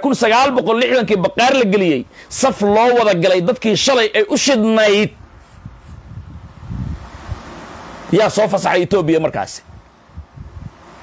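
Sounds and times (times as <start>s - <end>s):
wind noise on microphone: 1.4s - 3.1s, 4.8s - 11.0s.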